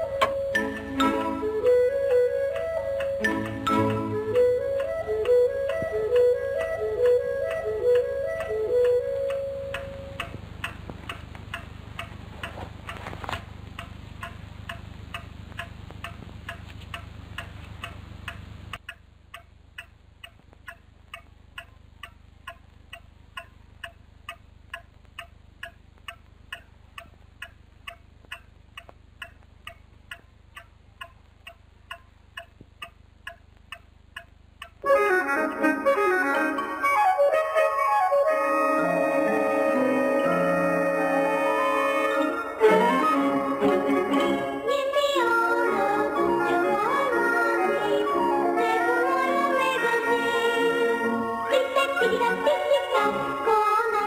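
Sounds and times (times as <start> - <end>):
clock ticking: 0.0 - 35.8
short music phrase: 34.9 - 44.6.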